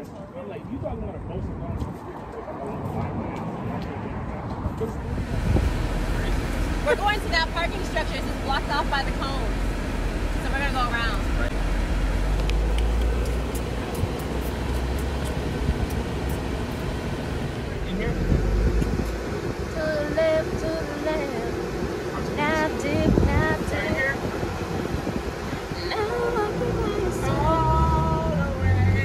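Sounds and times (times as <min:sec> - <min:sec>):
voices: 0:00.0 - 0:29.0
wind and road rumble: 0:00.0 - 0:29.0.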